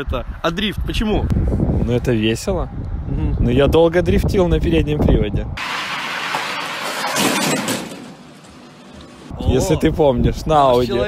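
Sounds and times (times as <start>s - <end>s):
car tyres skidding on asphalt: 5.6s - 8.2s.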